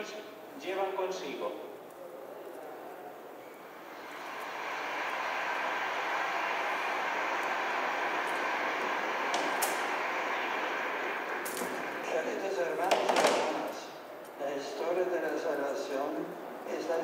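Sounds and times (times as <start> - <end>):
large crowd applauding: 3.6 - 13.9.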